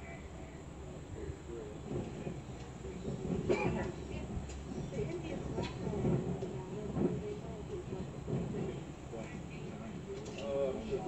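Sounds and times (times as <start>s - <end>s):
muffled speech: 0.0s - 11.0s.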